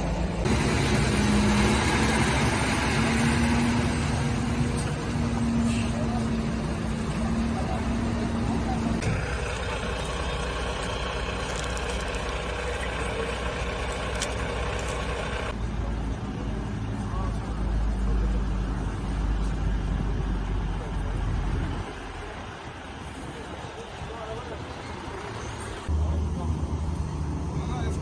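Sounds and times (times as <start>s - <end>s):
road traffic: 0.0s - 28.0s.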